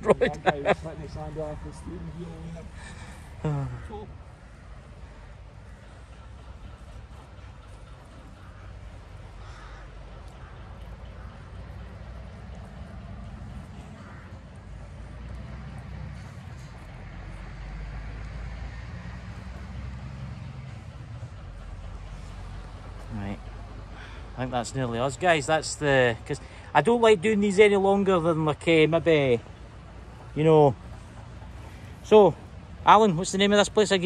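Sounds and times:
distant road traffic: 0:00.0 - 0:34.0
crow cawing: 0:02.4 - 0:06.4, 0:08.1 - 0:15.6, 0:23.9 - 0:24.5.

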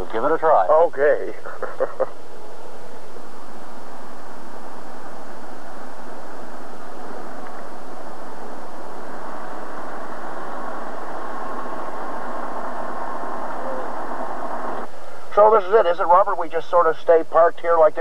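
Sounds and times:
faint whine: 0:00.0 - 0:18.0
car engine and road noise: 0:02.2 - 0:15.6.

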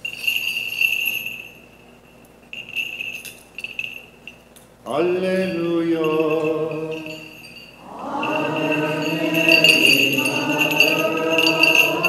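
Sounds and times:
censer bells jingling: 0:00.0 - 0:12.0.

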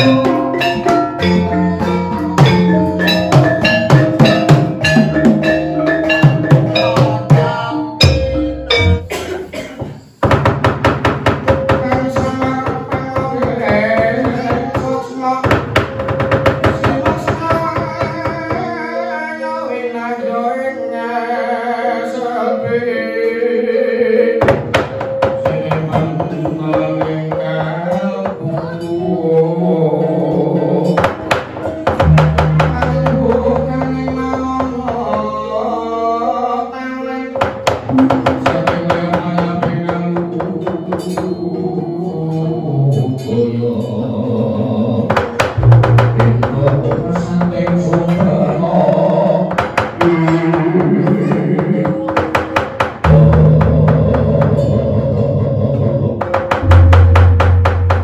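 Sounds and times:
hand drum strokes: 0:00.0 - 0:09.3, 0:30.9 - 0:35.4, 0:45.1 - 0:54.8, 0:56.2 - 0:58.0
gongs and metallophones melody: 0:00.0 - 0:09.8, 0:10.9 - 0:22.9, 0:24.6 - 0:36.2, 0:37.4 - 0:49.3, 0:50.4 - 0:58.0.

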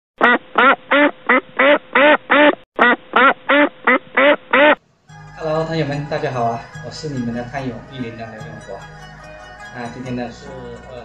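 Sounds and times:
duck quacking: 0:00.2 - 0:04.8
background music: 0:04.8 - 0:11.0
man's voice: 0:05.3 - 0:09.0, 0:09.7 - 0:11.0.

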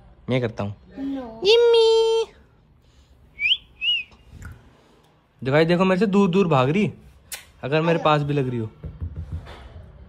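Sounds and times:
person whistling: 0:03.4 - 0:04.2.

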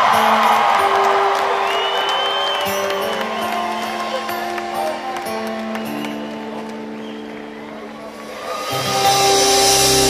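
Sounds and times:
live band playing: 0:00.0 - 0:10.0
electric guitar and bass chord: 0:08.8 - 0:10.0.

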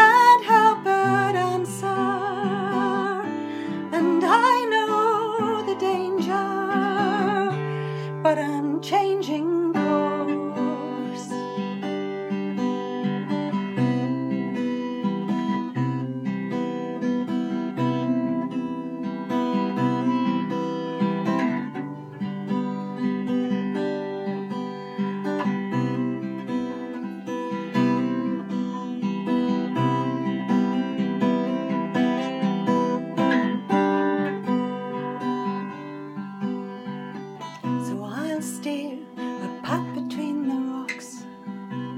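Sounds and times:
person singing: 0:00.0 - 0:11.7, 0:37.7 - 0:41.9
acoustic guitar chords: 0:00.0 - 0:41.9.

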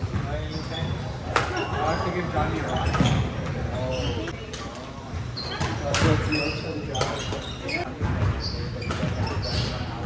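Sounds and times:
sneaker squeaks on court: 0:00.1 - 0:04.4, 0:05.2 - 0:10.0
rackets striking shuttlecock: 0:05.6 - 0:06.3.

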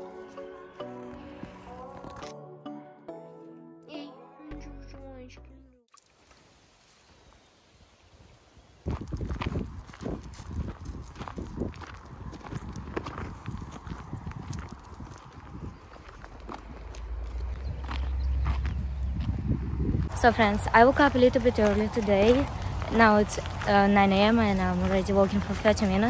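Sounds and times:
footsteps on dirt path: 0:00.0 - 0:02.4, 0:08.8 - 0:26.0
music: 0:00.0 - 0:05.9
wind rumble on microphone: 0:08.2 - 0:26.0.

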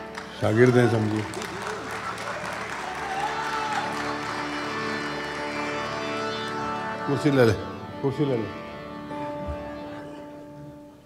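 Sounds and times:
audience applauding: 0:00.0 - 0:07.5
instrumental drone: 0:01.3 - 0:10.9.

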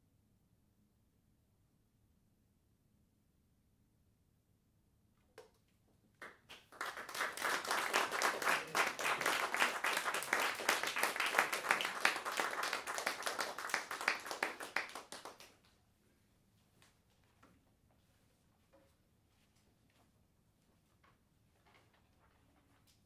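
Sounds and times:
audience applauding: 0:06.2 - 0:15.5.

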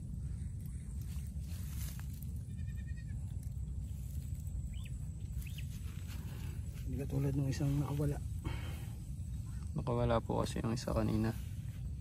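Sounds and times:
high chirps: 0:04.6 - 0:06.5.

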